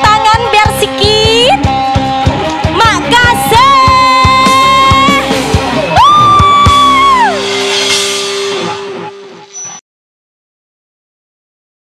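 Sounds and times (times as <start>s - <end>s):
live band with long held notes: 0.0s - 9.8s.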